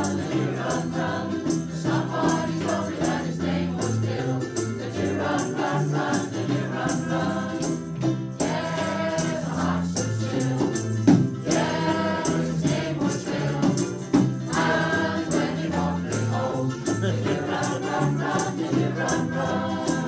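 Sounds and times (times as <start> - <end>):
women's choir singing: 0.0 - 20.0.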